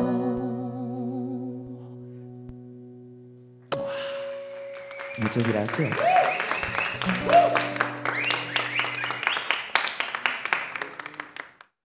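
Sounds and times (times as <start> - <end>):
audience clapping: 4.4 - 11.8
people cheering: 4.8 - 11.5.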